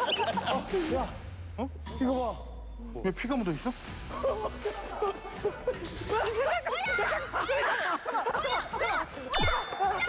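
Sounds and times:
people laughing: 0.0s - 1.1s, 4.1s - 10.0s.

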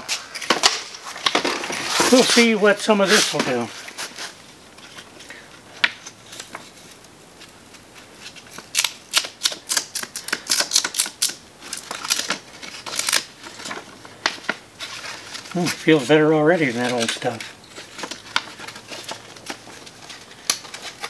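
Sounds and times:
sandpaper scratching on wood: 1.9s - 3.4s.

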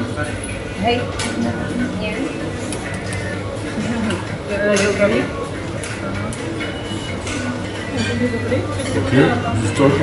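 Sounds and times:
background music: 0.0s - 10.0s
cafe voices: 0.0s - 10.0s.

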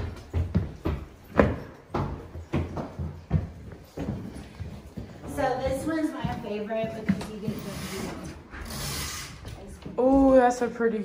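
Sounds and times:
footsteps on hard floor: 0.0s - 8.6s.

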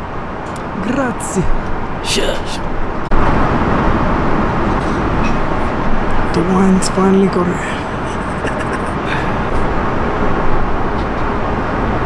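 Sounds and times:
airliner cabin noise: 0.0s - 12.0s.

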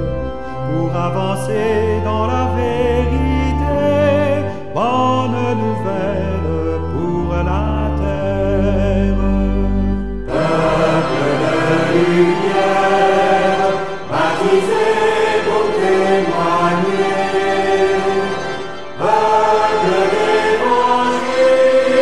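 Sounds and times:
choir singing a hymn: 10.2s - 22.0s.

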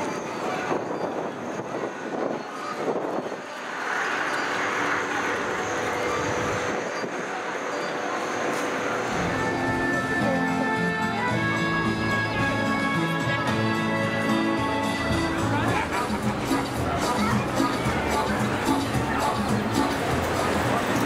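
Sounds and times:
steady rushing noise: 0.0s - 12.0s
passers-by talking: 0.0s - 21.0s
background music: 3.6s - 21.0s.

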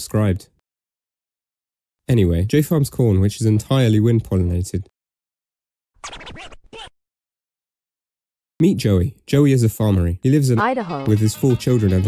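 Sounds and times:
record scratching: 6.0s - 6.9s.

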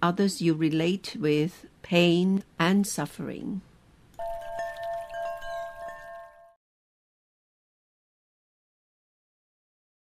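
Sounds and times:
chimes ringing: 4.2s - 6.6s.

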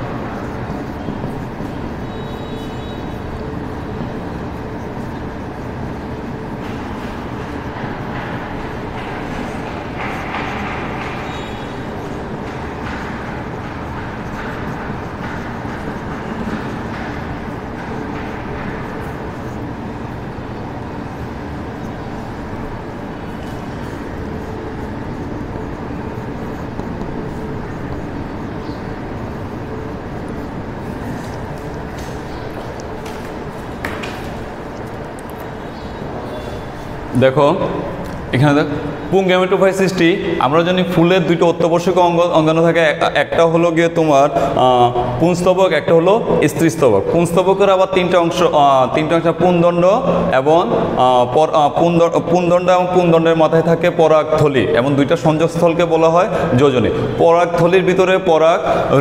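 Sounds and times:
marker squeaking on whiteboard: 0.0s - 37.2s.

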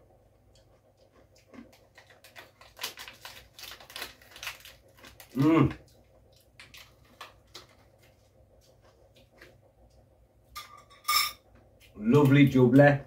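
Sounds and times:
crunchy chewing: 0.5s - 10.0s.

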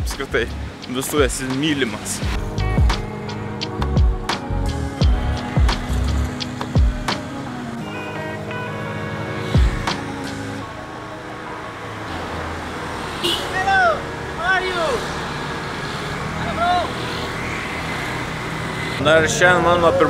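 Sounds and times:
background music: 0.0s - 12.8s
street traffic: 0.0s - 20.0s.

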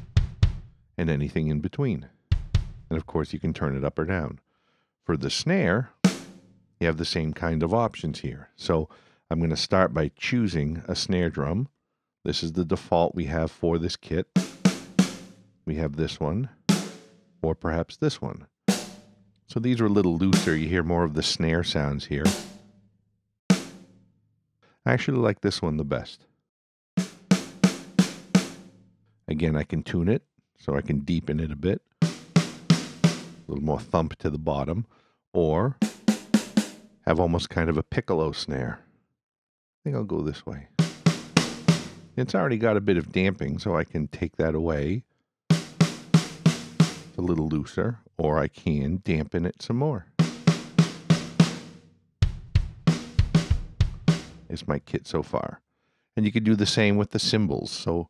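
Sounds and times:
kick and snare drum groove: 0.0s - 0.7s, 2.3s - 2.9s, 6.1s - 6.3s, 14.4s - 15.4s, 16.7s - 17.1s, 18.7s - 19.1s, 20.3s - 20.7s, 22.3s - 22.6s, 23.5s - 23.8s, 27.0s - 28.7s, 32.0s - 33.5s, 35.8s - 36.8s, 40.8s - 42.2s, 45.5s - 47.2s, 50.2s - 54.5s
snare drum hit: 18.7s - 19.1s, 40.8s - 42.1s, 50.2s - 54.4s.

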